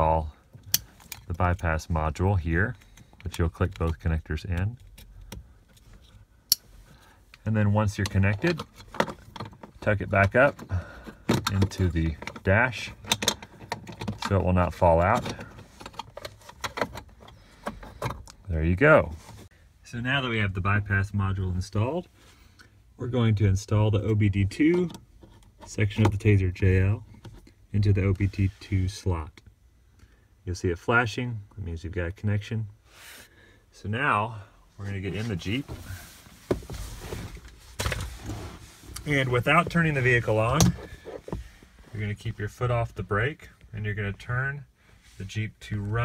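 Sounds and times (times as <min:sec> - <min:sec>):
rustling and shuffling: 0:05.2 - 0:19.7, 0:34.7 - 0:43.7.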